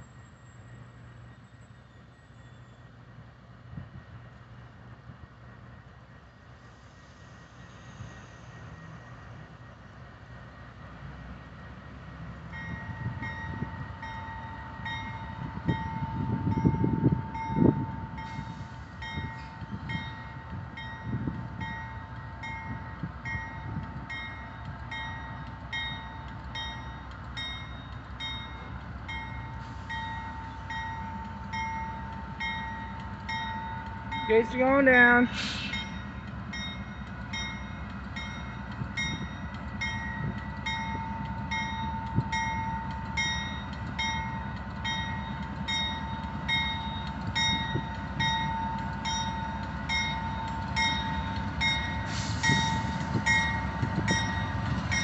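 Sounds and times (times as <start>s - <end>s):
freight train low rumble: 0.0s - 55.0s
train bell ringing: 12.5s - 55.0s.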